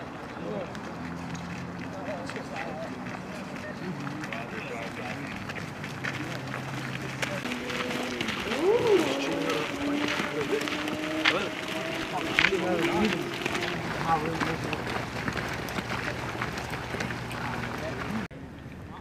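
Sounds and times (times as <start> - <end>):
indistinct overlapping talk: 0.0 - 19.0
boots marching on gravel: 0.4 - 18.3.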